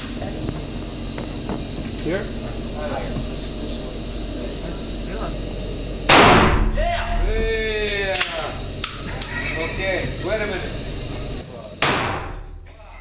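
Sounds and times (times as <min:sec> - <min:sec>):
shotgun shot with echo: 0:06.1 - 0:06.7, 0:11.8 - 0:12.5.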